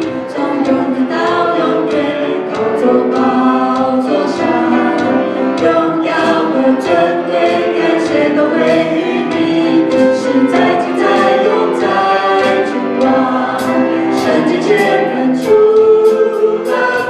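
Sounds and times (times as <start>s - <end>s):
people singing a praise song: 0.0s - 17.0s.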